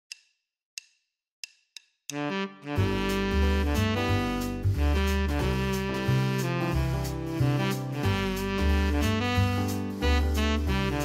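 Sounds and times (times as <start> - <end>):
wood-block clicks: 0.0 - 2.2.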